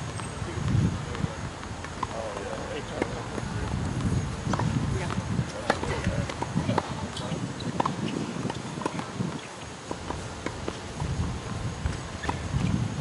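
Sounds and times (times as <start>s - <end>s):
wind rumble on microphone: 0.0s - 13.0s
tennis ball struck and bouncing: 3.0s - 10.8s, 11.4s - 12.7s.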